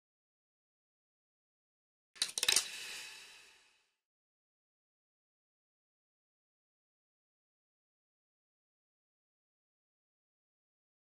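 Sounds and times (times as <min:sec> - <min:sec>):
sharp clicks and hits: 0:02.2 - 0:03.5.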